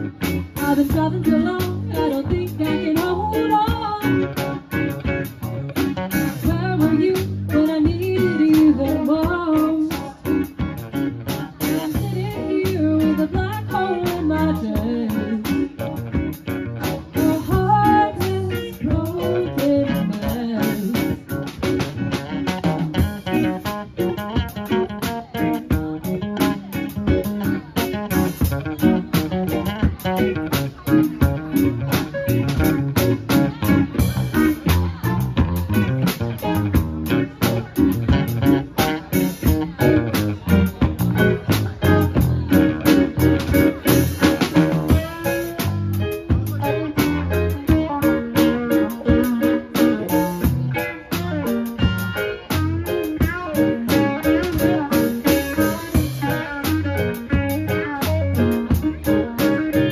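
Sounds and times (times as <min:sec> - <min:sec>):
bass guitar: 0:00.0 - 0:59.9
drum kit: 0:00.0 - 0:59.9
electric guitar: 0:00.0 - 0:59.9
keyboard: 0:00.0 - 0:59.9
woman singing: 0:00.6 - 0:04.6, 0:06.2 - 0:10.6, 0:11.3 - 0:15.8, 0:16.8 - 0:21.3, 0:44.9 - 0:51.5, 0:52.4 - 0:59.9.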